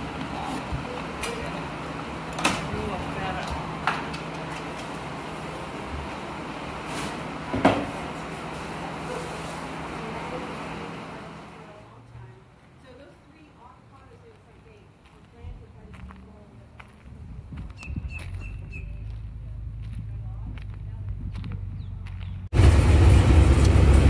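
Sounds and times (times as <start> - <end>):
electric fan whirring: 0.0 - 12.0.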